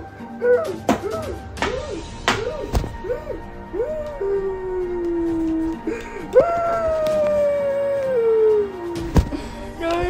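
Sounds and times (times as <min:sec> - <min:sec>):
person wailing: 0:00.3 - 0:09.0.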